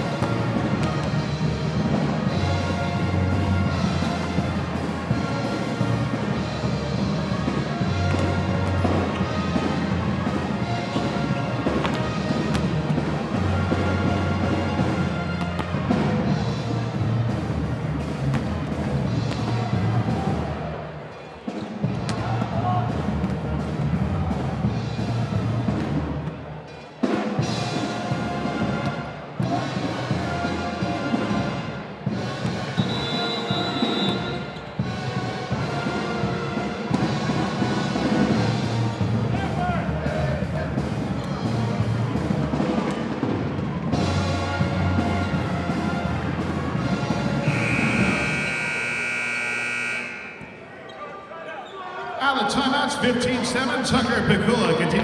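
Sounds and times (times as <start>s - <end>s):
high electronic horn: 47.4s - 50.8s.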